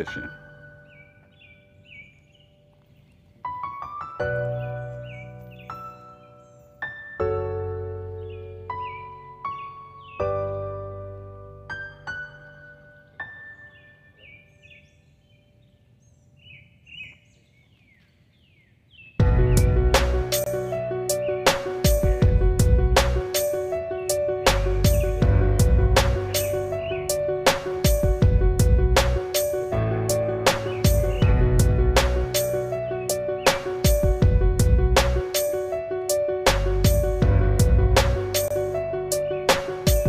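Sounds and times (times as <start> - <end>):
faint birds chirping: 0.0 - 11.0, 12.0 - 37.2
steady music tones: 19.2 - 40.0.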